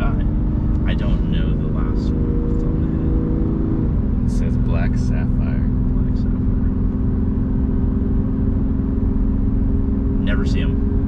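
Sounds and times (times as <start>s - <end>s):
car engine droning in cabin: 0.0s - 11.0s
low road rumble: 0.0s - 11.0s.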